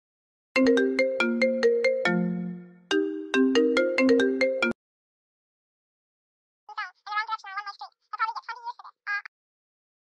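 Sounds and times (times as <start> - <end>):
smartphone ringtone melody: 0.6 - 4.8.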